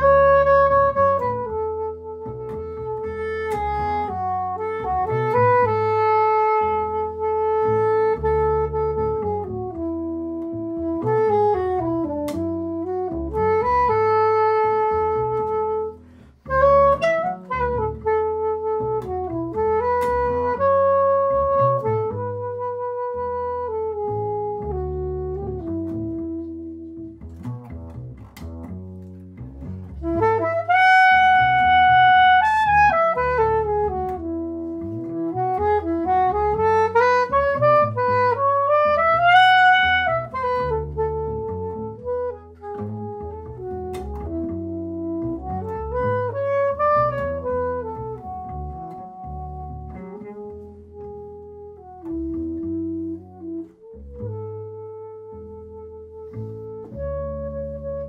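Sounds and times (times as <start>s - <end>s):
plucked double bass: 0.0s - 58.0s
soprano saxophone solo: 0.0s - 58.0s.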